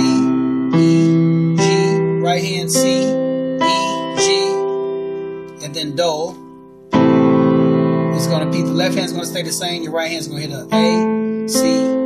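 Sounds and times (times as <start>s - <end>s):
keyboard playing piano chords: 0.0s - 12.0s.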